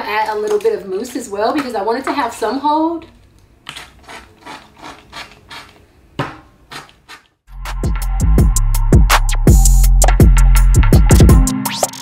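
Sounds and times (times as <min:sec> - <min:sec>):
music with drum beat: 0:07.7 - 0:12.0.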